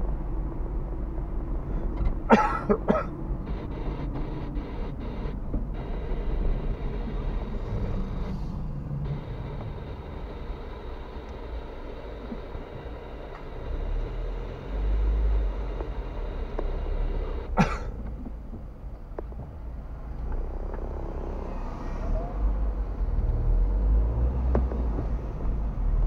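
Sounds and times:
car engine and tyres rumbling: 0.0 - 26.0.

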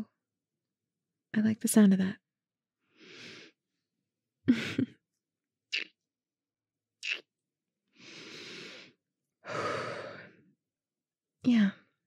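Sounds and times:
woman breathing: 2.8 - 3.6, 7.9 - 10.5.

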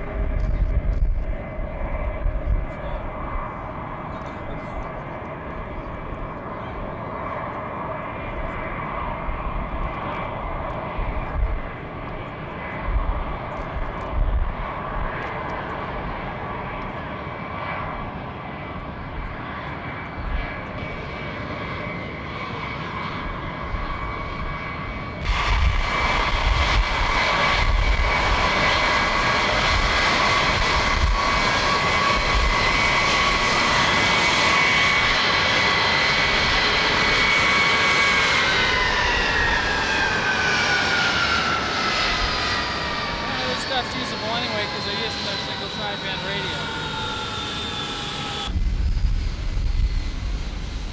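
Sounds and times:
jet engines whining: 0.0 - 50.9.

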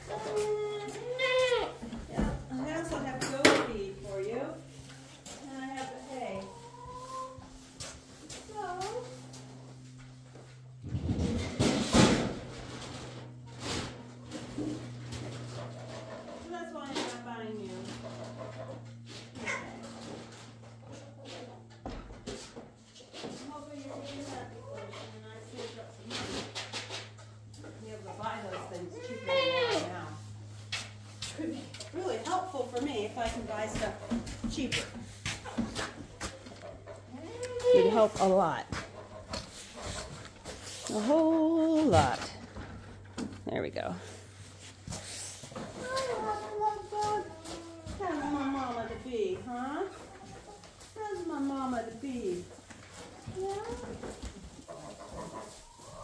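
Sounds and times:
goats bleating: 0.4 - 1.9.

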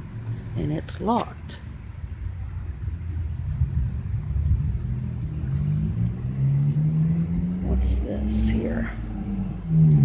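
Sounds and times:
vehicle engine accelerating: 2.1 - 10.0.

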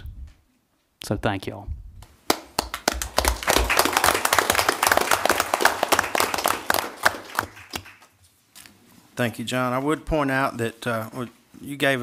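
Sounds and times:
people applauding: 2.3 - 8.2.

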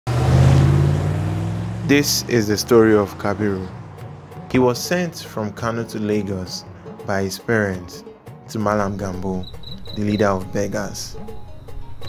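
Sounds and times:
truck engine pulling away: 0.1 - 7.0
person speaking: 4.5 - 11.2.

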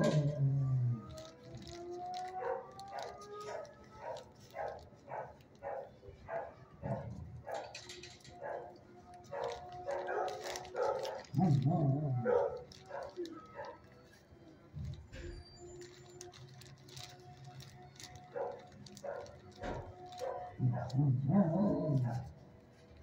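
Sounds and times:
dogs whining: 0.0 - 1.2, 20.2 - 22.3
dogs barking: 2.3 - 14.0, 18.3 - 22.4
deep dog barks: 9.4 - 13.8.

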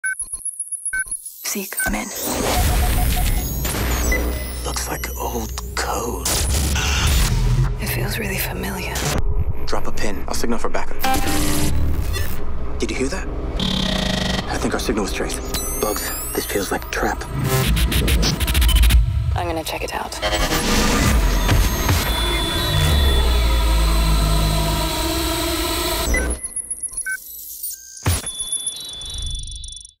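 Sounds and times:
electronic glitch beeps: 0.0 - 9.2, 11.0 - 12.4, 13.6 - 30.0
dense trailer music: 2.4 - 26.4
deep rumble: 5.4 - 25.0.

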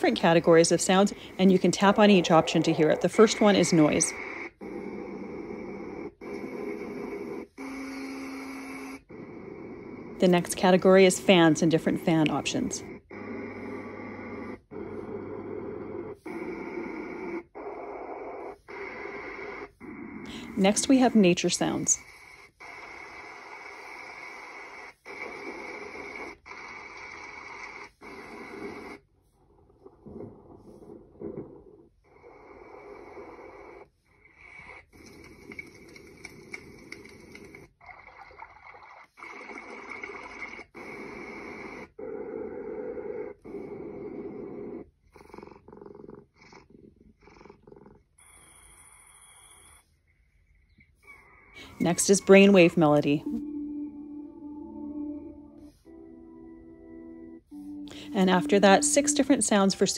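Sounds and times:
cat snoring and purring: 0.0 - 29.0, 29.6 - 49.8
high steady tone: 51.8 - 59.9.

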